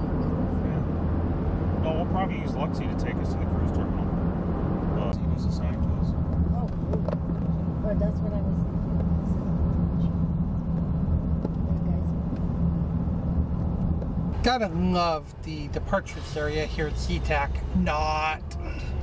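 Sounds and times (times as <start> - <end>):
car engine hum: 0.0 - 19.0
tyre road noise: 0.0 - 19.0.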